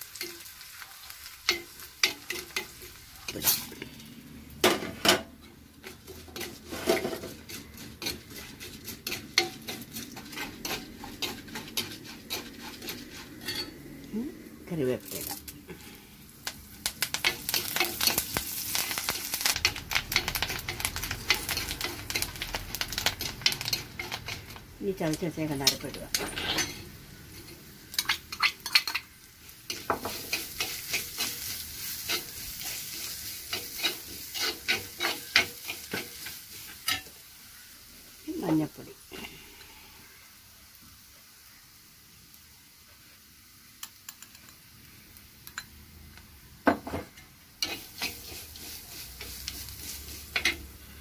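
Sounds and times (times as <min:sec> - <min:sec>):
faint sizzle: 0:00.0 - 0:51.0
spoon scraping earthenware pot: 0:05.8 - 0:13.8, 0:25.6 - 0:29.1, 0:29.7 - 0:37.1, 0:47.6 - 0:50.6
spoon scraping clay pot: 0:05.9 - 0:13.7.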